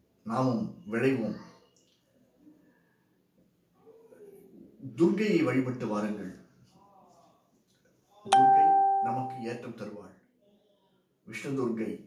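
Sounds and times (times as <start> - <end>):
bell-like chime: 8.3 - 9.5
person speaking: 8.3 - 9.6.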